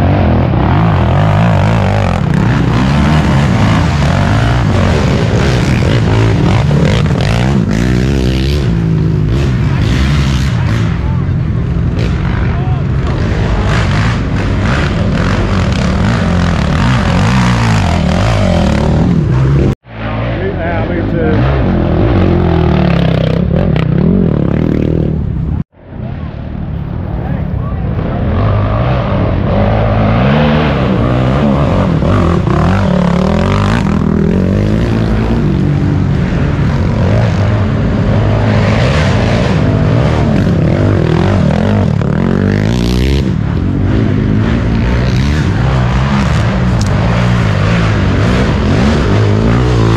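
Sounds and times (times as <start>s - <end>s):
all-terrain vehicle engine revving: 0.0s - 25.6s, 28.1s - 49.9s.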